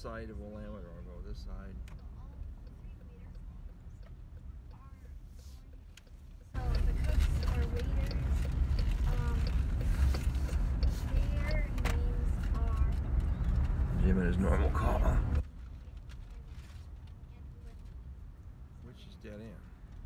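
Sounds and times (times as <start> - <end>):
car road and engine rumble: 0.0 - 20.0
sharp ticks: 1.7 - 14.0.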